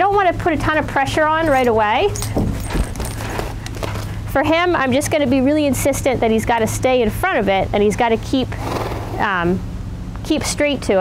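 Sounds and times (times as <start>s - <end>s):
horse shuffling: 1.2s - 4.3s
horse hoof thuds: 1.6s - 4.1s.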